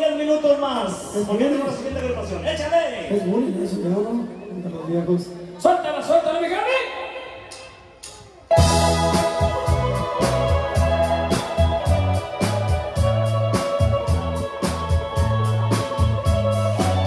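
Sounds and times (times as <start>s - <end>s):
bass line: 8.5s - 17.0s
electric guitar: 8.5s - 17.0s
organ-tone electric keyboard: 8.5s - 17.0s
steady drum beat: 8.5s - 17.0s.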